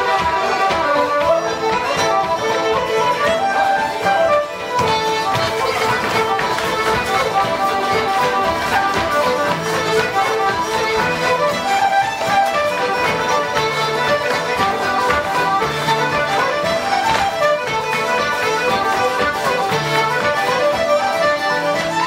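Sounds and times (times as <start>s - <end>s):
accordion: 0.0s - 22.0s
fiddle: 0.0s - 22.0s
folk dance band playing: 0.0s - 22.0s.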